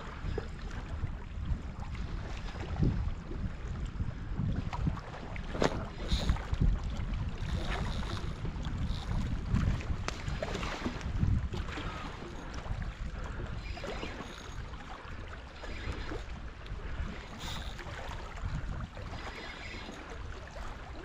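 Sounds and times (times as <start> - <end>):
wind buffeting microphone: 0.0 - 21.0
small waves on rocky shore: 4.8 - 21.0.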